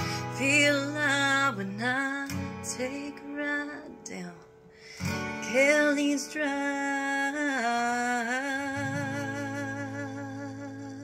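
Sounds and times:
acoustic guitar chord ringing: 0:08.8 - 0:10.9.

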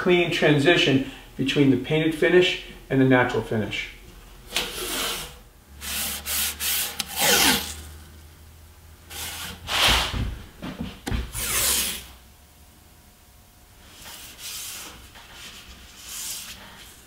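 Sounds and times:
tape pulled off roll: 0:06.0 - 0:07.9.

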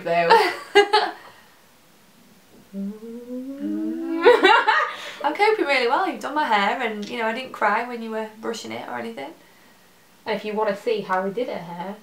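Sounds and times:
woman humming: 0:02.5 - 0:04.6.

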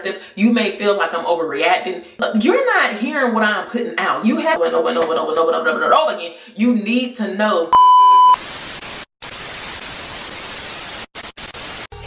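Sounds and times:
test-pattern tone beep: 0:07.8 - 0:08.4
television static hiss: 0:08.4 - 0:11.9.

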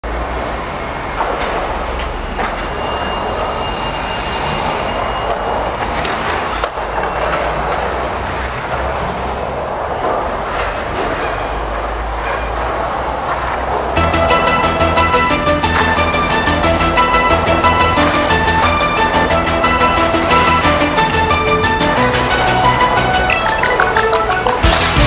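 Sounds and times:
skateboard wheels rolling on concrete: 0:00.0 - 0:03.6, 0:04.6 - 0:25.0
skateboard clacks: 0:05.3 - 0:25.0.

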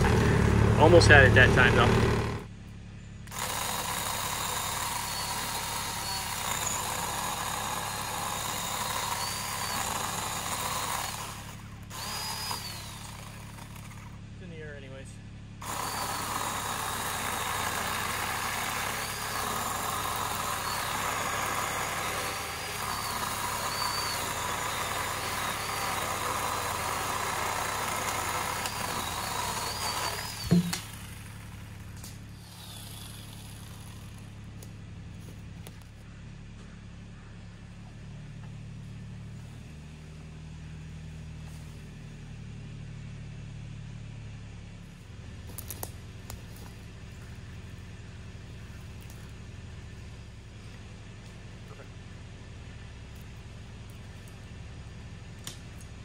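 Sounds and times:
engine running steadily: 0:00.0 - 0:56.0.

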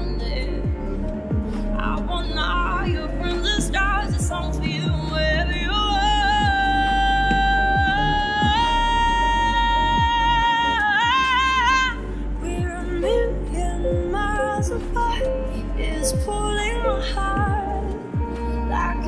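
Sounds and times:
low accompaniment: 0:00.0 - 0:19.0.

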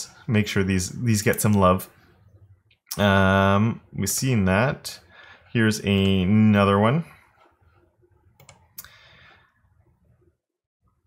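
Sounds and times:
computer mouse clicks: 0:08.3 - 0:08.9.

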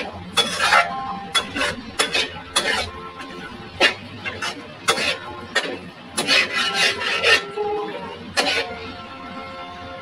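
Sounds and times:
spatula scraping a wok: 0:00.0 - 0:10.0
background music: 0:06.7 - 0:10.0.

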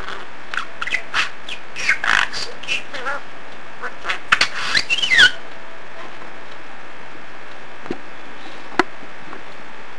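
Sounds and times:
steady background hiss: 0:00.0 - 0:09.9
budgerigar talking: 0:00.1 - 0:05.4.

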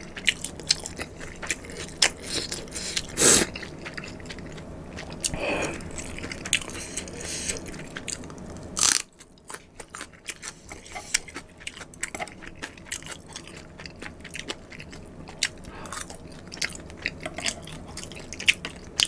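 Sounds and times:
chewing crunchy food: 0:00.0 - 0:19.0
chewing noodles: 0:00.0 - 0:19.0.

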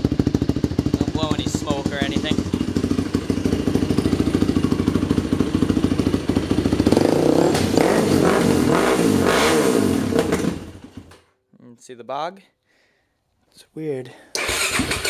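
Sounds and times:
quad engine idling and revving: 0:00.0 - 0:11.2, 0:14.4 - 0:15.0.

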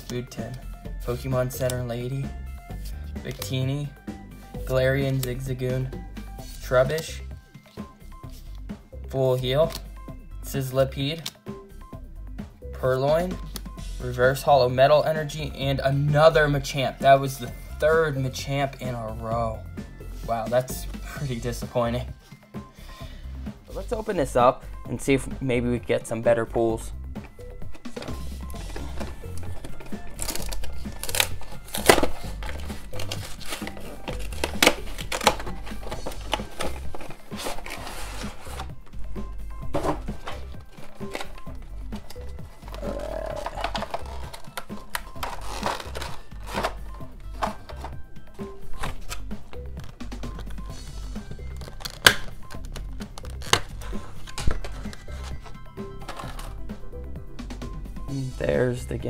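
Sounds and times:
background music with bass line: 0:00.0 - 0:59.0
plastic blister tray crinkling: 0:27.8 - 0:38.7, 0:39.8 - 0:48.0, 0:51.5 - 0:56.5.

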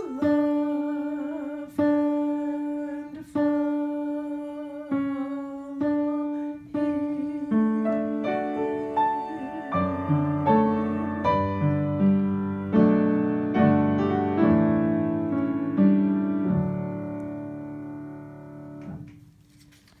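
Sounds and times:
upright piano chords: 0:00.0 - 0:19.2
brief rustle: 0:18.8 - 0:20.0.

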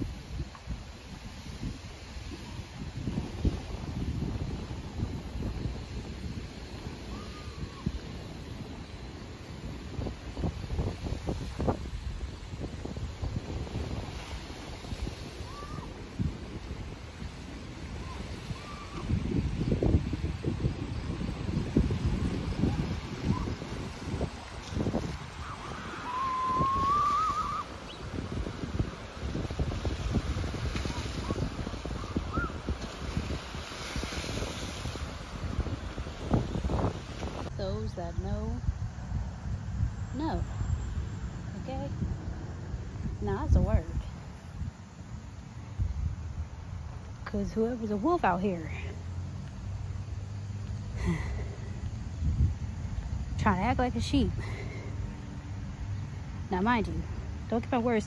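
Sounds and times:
wind buffeting microphone: 0:00.0 - 0:58.0
wavering whistle: 0:22.7 - 0:23.6, 0:25.4 - 0:28.0, 0:32.0 - 0:32.6.

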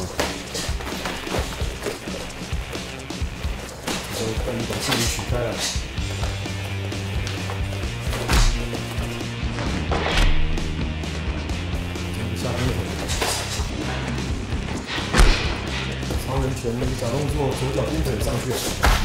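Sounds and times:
background music: 0:00.0 - 0:19.0
gloved punches and kicks landing: 0:07.2 - 0:10.6, 0:15.1 - 0:15.7, 0:18.8 - 0:19.0.

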